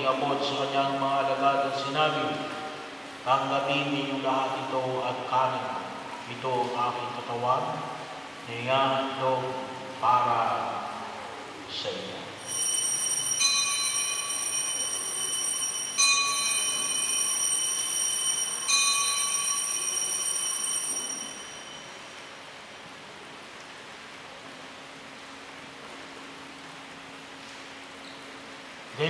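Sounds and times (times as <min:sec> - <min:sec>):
altar bells ringing: 0:12.4 - 0:22.3.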